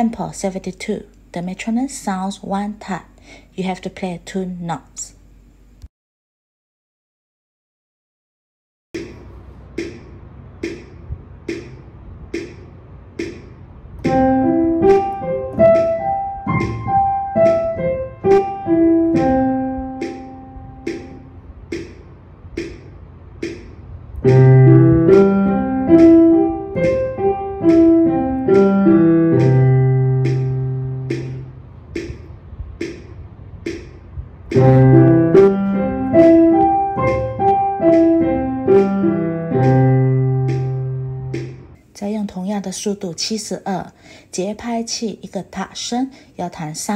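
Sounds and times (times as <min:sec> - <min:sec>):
metronome clicking: 0:10.6 - 0:11.8, 0:13.2 - 0:22.8, 0:23.4 - 0:33.0, 0:34.5 - 0:41.6
piano arpeggio: 0:14.1 - 0:21.4, 0:24.2 - 0:31.5, 0:34.5 - 0:41.8.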